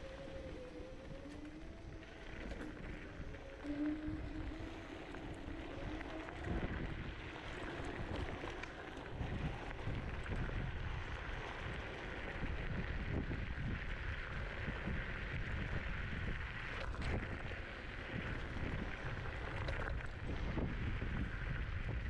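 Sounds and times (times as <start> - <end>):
electric motor whine: 0.0 - 22.0
wind buffeting microphone: 0.0 - 22.0.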